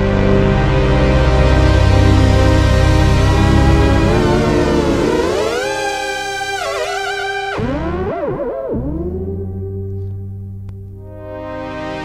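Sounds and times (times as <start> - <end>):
synthesizer pad chord sliding pitch: 0.0 - 12.0.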